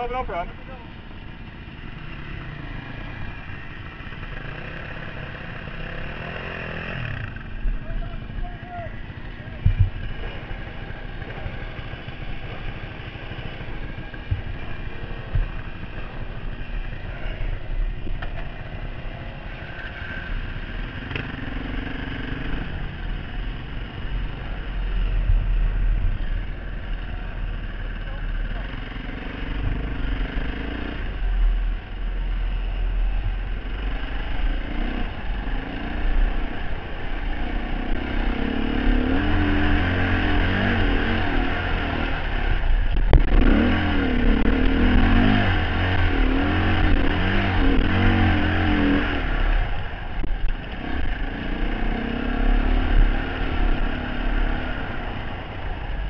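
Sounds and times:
dirt bike engine revving: 1.3s - 17.7s, 33.6s - 55.9s
heavy low rumble: 5.7s - 19.6s, 38.9s - 56.0s.

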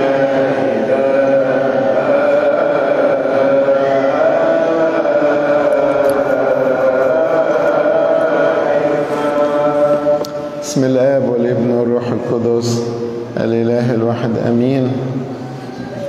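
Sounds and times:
slow melismatic chanting: 0.0s - 16.0s.

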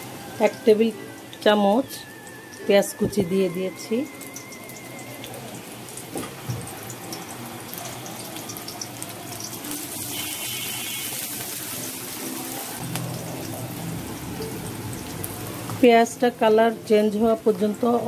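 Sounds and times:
onions sizzling in hot oil: 0.0s - 18.0s.

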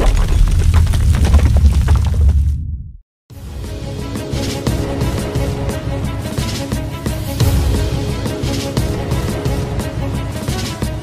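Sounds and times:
crackle of shattering debris: 0.0s - 2.4s.

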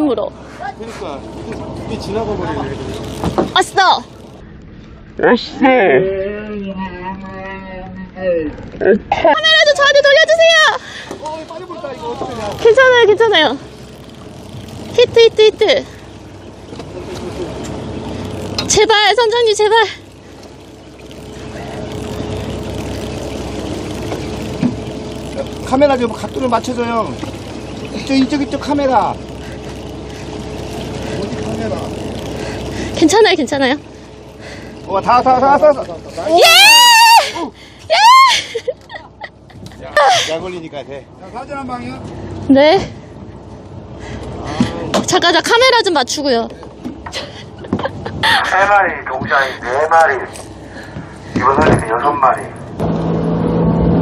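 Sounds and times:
sea noise: 0.0s - 5.6s, 8.6s - 53.7s
boat engine humming: 0.0s - 54.0s
wind: 0.0s - 54.0s
loud high exclamation: 36.3s - 38.4s
people talking: 51.4s - 52.6s.

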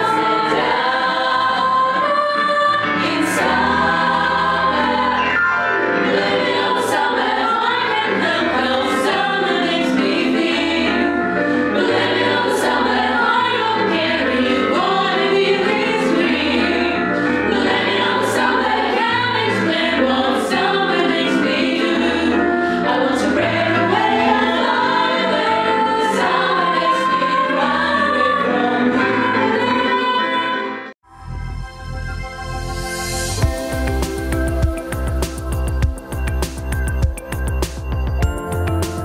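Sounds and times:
women singing in close harmony: 0.0s - 5.2s, 6.0s - 30.8s.

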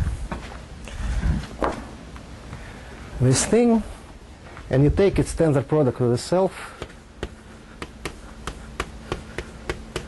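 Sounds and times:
chalk tapping on board: 6.8s - 10.0s.

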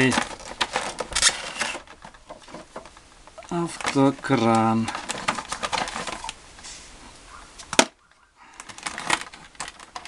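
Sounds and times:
plastic blister pack scraping: 0.0s - 6.8s, 7.6s - 10.0s.

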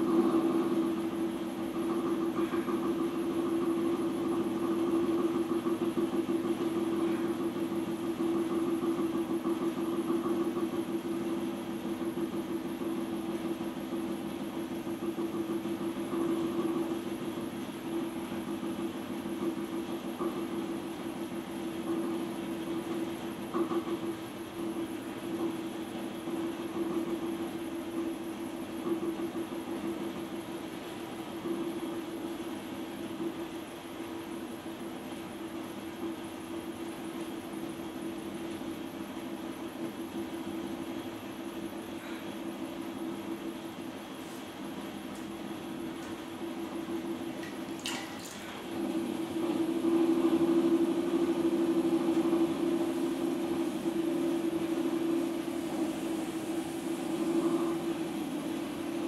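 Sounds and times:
potter's wheel motor humming: 0.0s - 59.0s.

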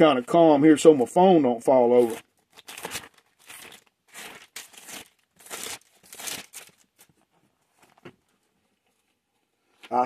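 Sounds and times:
paper pages rustling: 2.0s - 8.2s.

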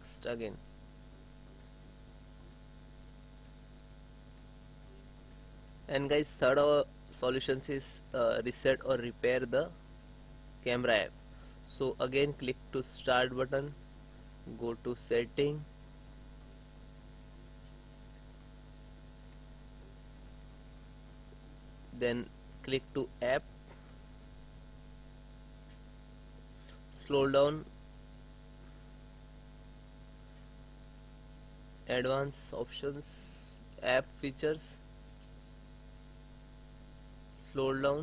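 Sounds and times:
electrical mains hum: 0.0s - 38.0s.

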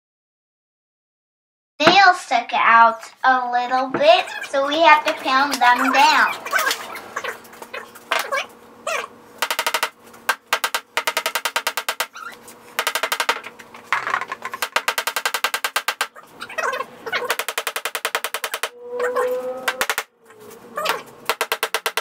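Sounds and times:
hammer tapping nails into wood: 9.4s - 12.2s, 12.8s - 13.5s, 14.6s - 16.1s, 17.3s - 18.7s, 19.7s - 20.1s, 21.3s - 22.0s.

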